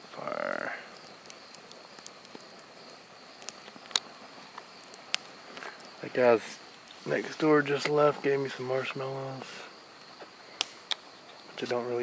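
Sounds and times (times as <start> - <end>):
campfire crackling and popping: 0.0 - 12.0
faint high insect drone: 0.0 - 12.0.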